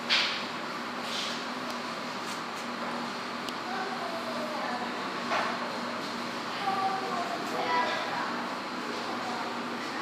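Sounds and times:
indoor room noise: 0:00.0 - 0:10.0.

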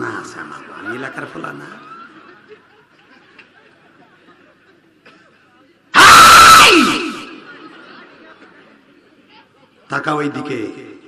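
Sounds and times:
man shouting into microphone: 0:06.0 - 0:07.3.

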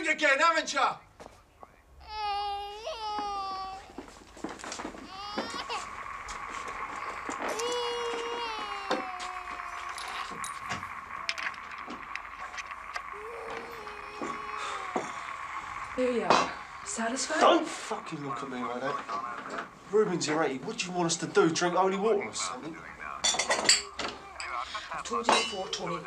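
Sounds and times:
infant crying: 0:02.0 - 0:12.1, 0:13.0 - 0:16.6, 0:23.6 - 0:24.8.

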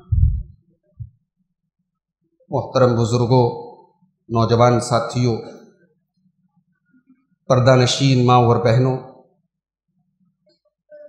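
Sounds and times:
low muffled thumps: 0:00.0 - 0:01.2.

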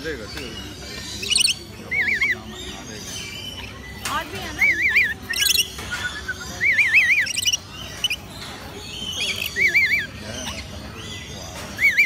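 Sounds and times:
high bird chirps: 0:00.1 - 0:12.0
warbling bird whistle: 0:04.6 - 0:08.3.

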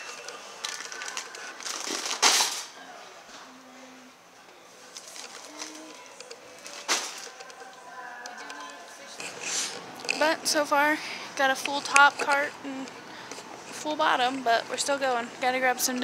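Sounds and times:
wire shopping cart rattling: 0:00.0 - 0:02.7
shopping cart clatters: 0:00.0 - 0:02.8, 0:06.6 - 0:07.6.

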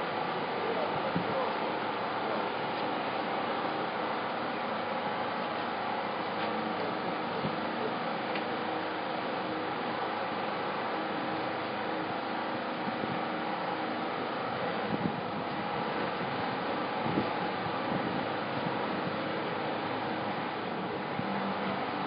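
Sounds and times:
room ambience rumble and hiss: 0:00.0 - 0:22.0.

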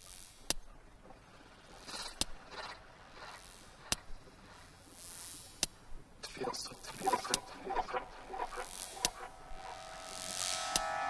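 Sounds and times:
soft hissing noise swells: 0:01.3 - 0:11.0
sharp clicks: 0:06.9 - 0:09.3.

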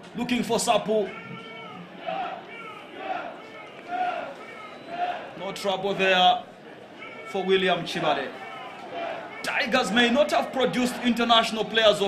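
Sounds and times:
commentary: 0:00.0 - 0:12.0
distant voices shouting: 0:01.0 - 0:05.7, 0:06.7 - 0:12.0.

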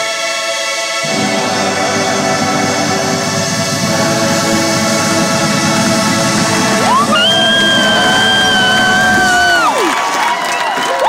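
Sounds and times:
brass and drums playing a chord: 0:01.0 - 0:09.6.

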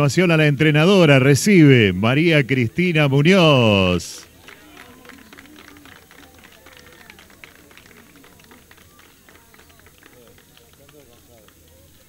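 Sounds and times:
indistinct voices chatting: 0:00.0 - 0:10.6
scattered clapping: 0:03.4 - 0:12.0.

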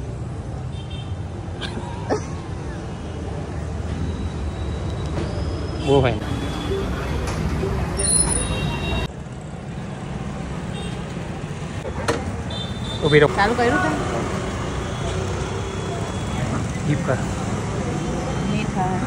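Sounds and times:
street traffic rumble: 0:00.0 - 0:19.0.

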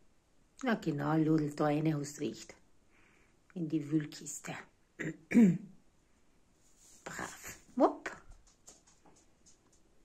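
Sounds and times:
person clearing throat coughing: 0:05.0 - 0:05.7.

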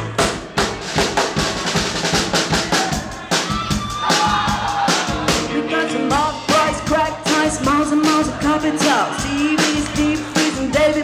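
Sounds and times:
bass drum and snare beat: 0:00.0 - 0:11.0
live band playing dance music: 0:00.0 - 0:11.0.

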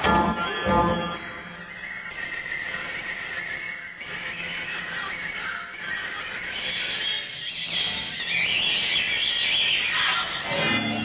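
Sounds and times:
wavering noisy electric guitar: 0:10.1 - 0:11.0.

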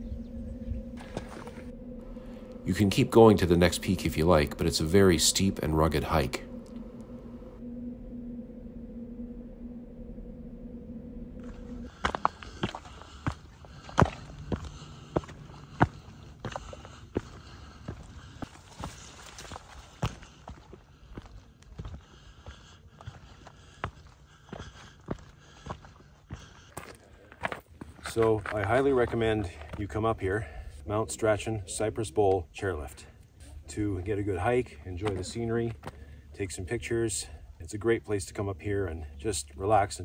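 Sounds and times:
steady low hum: 0:00.0 - 0:40.0
footsteps on gravel: 0:11.4 - 0:30.1.

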